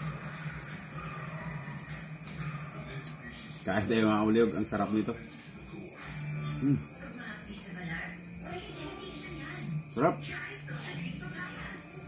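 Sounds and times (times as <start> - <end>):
crickets chirping: 0.0 - 12.0.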